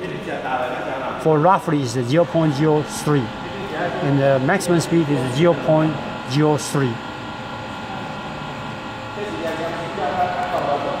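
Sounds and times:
spindle motor humming and whining: 0.0 - 11.0.

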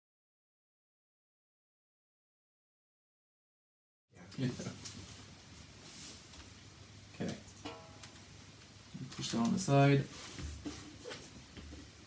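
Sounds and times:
room hiss: 4.2 - 12.0
plucked string notes: 7.6 - 8.1.

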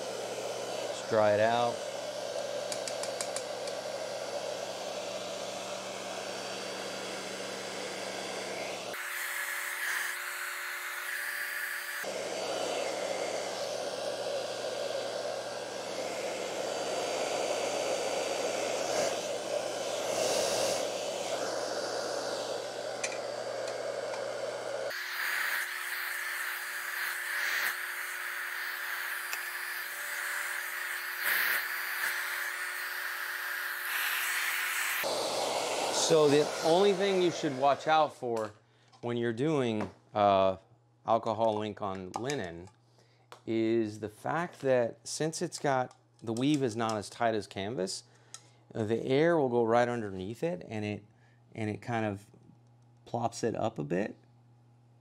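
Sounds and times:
hair dryer blowing: 0.0 - 38.5.

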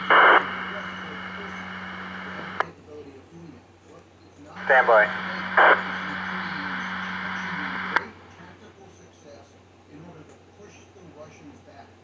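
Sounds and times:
radio static burst: 0.0 - 2.6, 4.6 - 8.1
radio hiss and hum: 0.0 - 12.0.

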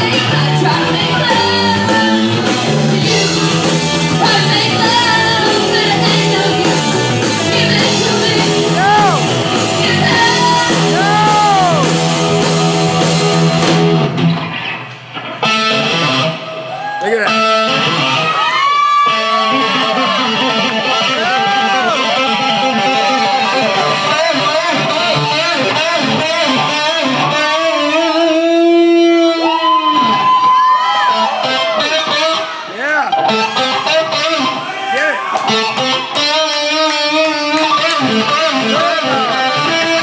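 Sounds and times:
electric guitar solo: 0.0 - 40.0
rock band playing: 0.0 - 40.0.

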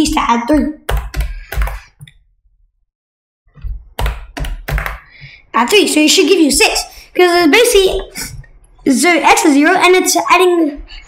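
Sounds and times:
computer keyboard keystrokes: 0.9 - 1.8, 4.0 - 5.1.

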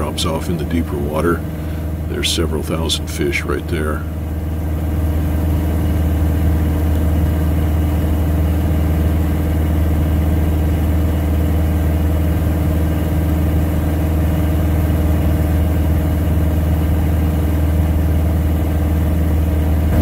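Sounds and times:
plane engine and propeller droning: 0.0 - 20.0.

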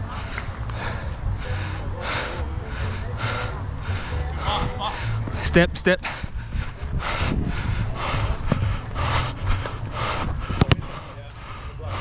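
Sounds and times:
running footsteps: 0.0 - 12.0
wind rumble on microphone: 0.0 - 12.0
breathing: 0.1 - 5.3, 6.0 - 12.0.

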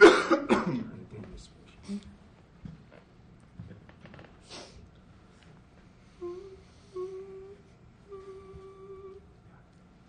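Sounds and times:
person coughing: 0.0 - 0.9.

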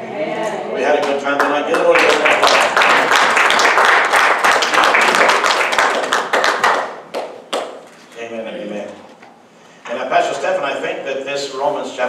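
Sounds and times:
crowd applauding: 1.0 - 7.8.

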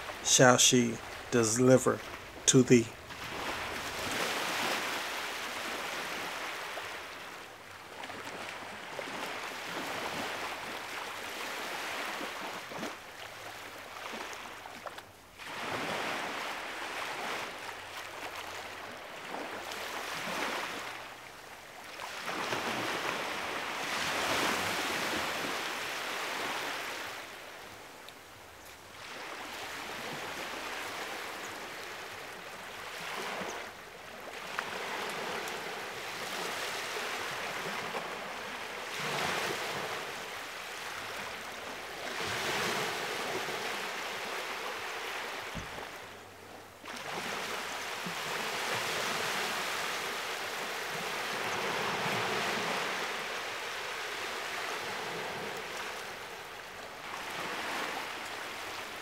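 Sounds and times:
small sea waves washing in: 3.0 - 46.2, 46.8 - 59.0.

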